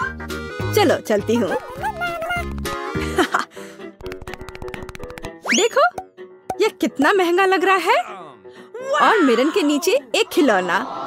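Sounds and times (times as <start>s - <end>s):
background music: 0.0s - 11.0s
fast run of clicks: 4.0s - 5.4s.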